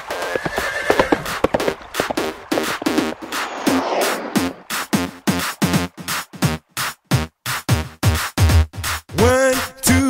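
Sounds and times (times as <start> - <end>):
horse whinnying: 0.0 - 3.0.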